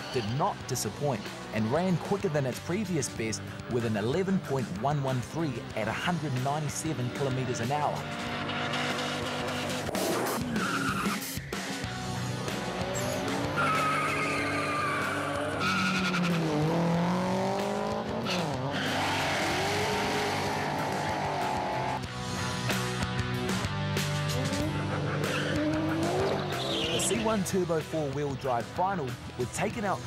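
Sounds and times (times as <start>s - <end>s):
background music: 0.0s - 30.0s
racing car engines revving: 7.1s - 27.5s
tyre squeal: 10.5s - 11.3s, 13.0s - 16.5s.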